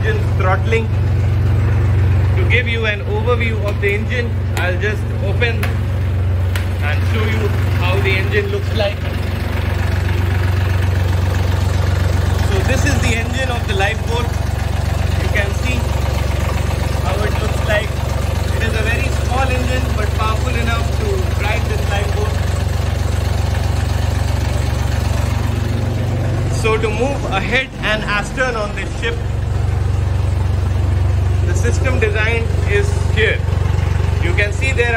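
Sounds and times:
diesel engine running: 0.0s - 34.9s.

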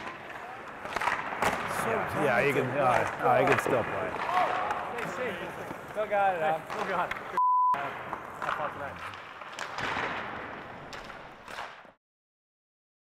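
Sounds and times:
ice rink noise: 0.0s - 12.0s
voices: 0.3s - 9.1s
censor bleep: 7.4s - 7.8s.

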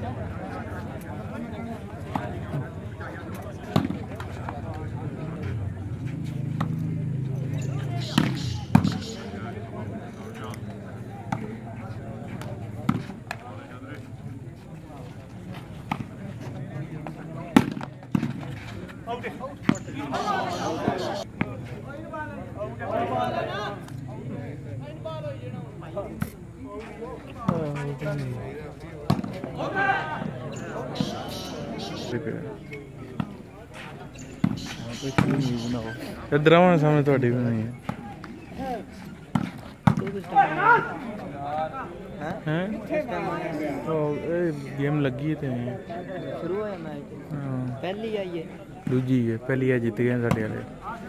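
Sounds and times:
crowd chatter: 0.0s - 51.0s
people shouting: 20.0s - 21.2s, 29.5s - 32.1s, 40.3s - 41.0s.

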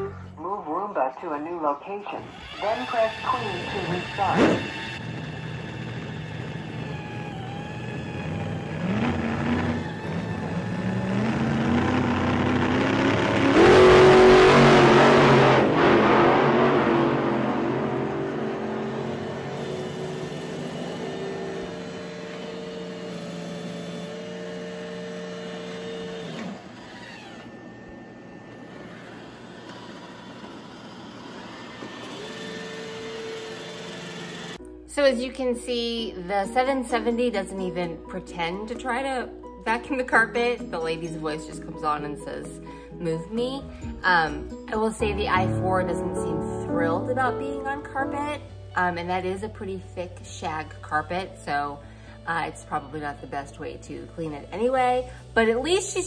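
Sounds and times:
robot vacuum motor whine: 2.2s - 15.4s, 18.8s - 34.6s.

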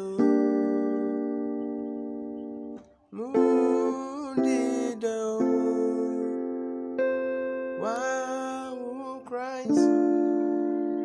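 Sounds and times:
electronic keyboard melody: 0.0s - 11.0s.

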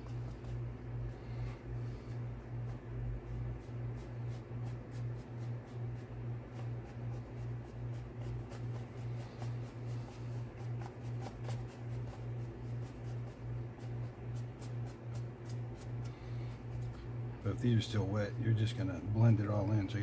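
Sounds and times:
paintbrush scratching and dabbing: 0.0s - 17.0s
low pulsing background hum: 0.0s - 20.0s.

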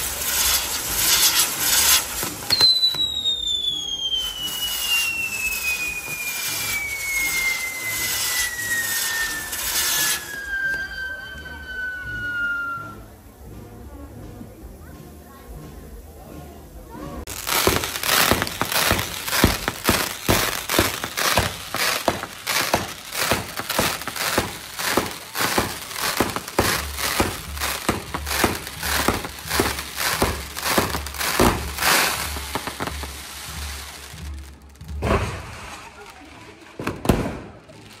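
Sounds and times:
fireworks bangs and crackles: 0.0s - 13.3s, 17.1s - 38.0s.

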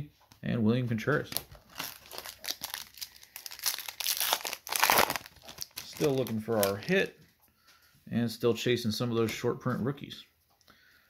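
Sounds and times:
foil wrapper crinkling and tearing: 1.3s - 7.0s.

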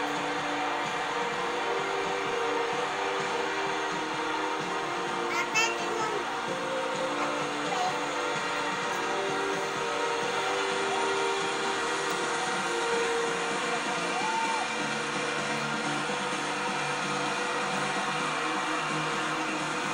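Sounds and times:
crowd roar: 0.0s - 19.9s
music with long held notes: 0.0s - 19.9s.

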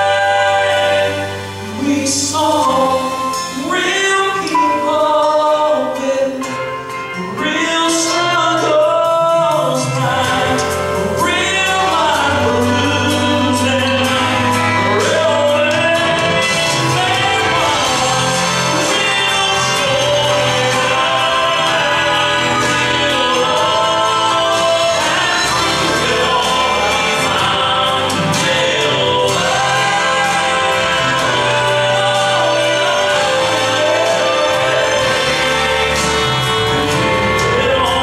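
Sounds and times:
man singing into microphone: 0.0s - 38.0s
musical accompaniment: 0.0s - 38.0s.

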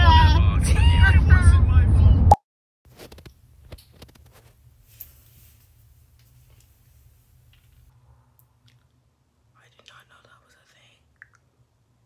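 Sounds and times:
person whispering faintly: 9.6s - 11.1s.

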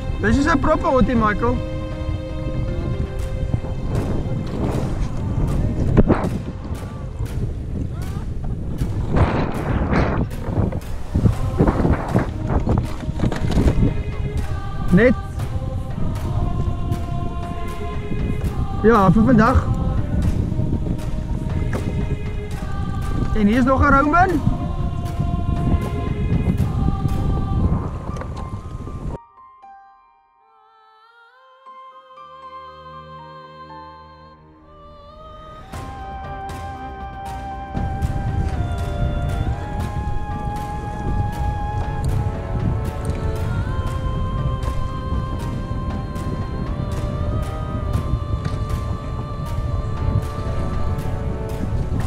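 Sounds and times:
wind buffeting microphone: 0.0s - 29.2s, 35.2s - 52.0s
background music with held notes: 0.0s - 52.0s.

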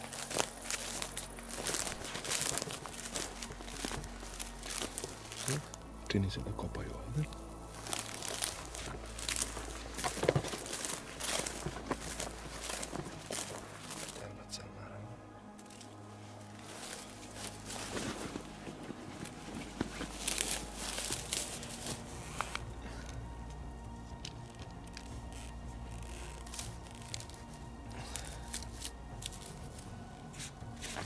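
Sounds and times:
rustling of gear: 0.0s - 14.3s, 15.6s - 31.0s.

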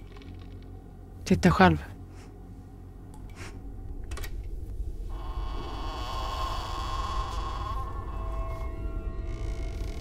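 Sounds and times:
low rumble: 1.9s - 10.0s
electric buzzing drone: 5.1s - 10.0s.

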